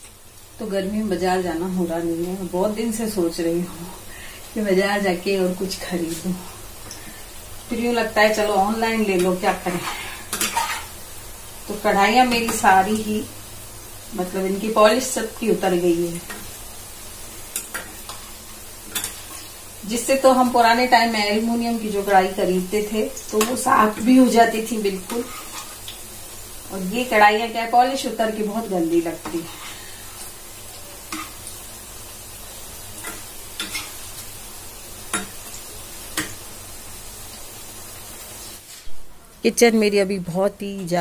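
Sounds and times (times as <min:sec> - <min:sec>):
food sizzling in hot oil: 0:00.0 - 0:41.0.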